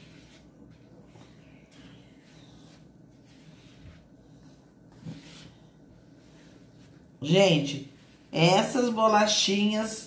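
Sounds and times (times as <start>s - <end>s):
hand rustling in flour: 0.0s - 8.9s
faint dough mixing: 0.0s - 10.0s.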